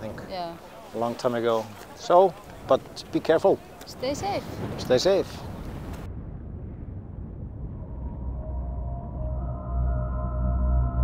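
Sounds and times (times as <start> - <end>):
rumble of erupting lava: 4.4 - 9.7.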